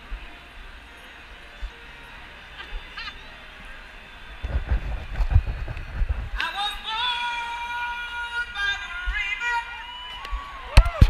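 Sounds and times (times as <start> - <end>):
low wind rumble on microphone: 4.4 - 6.9.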